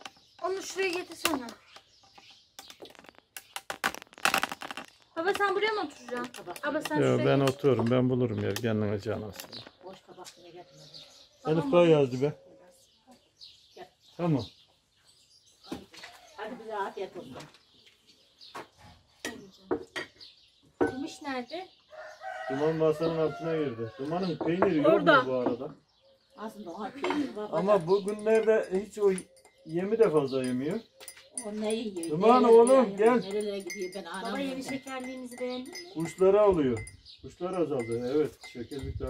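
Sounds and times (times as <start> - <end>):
birds chirping faintly: 0.0 - 39.0
tableware clicking and tapping: 6.0 - 8.7, 19.3 - 21.2, 24.4 - 25.7, 27.0 - 39.0
tea glasses and plates clinking: 27.0 - 39.0.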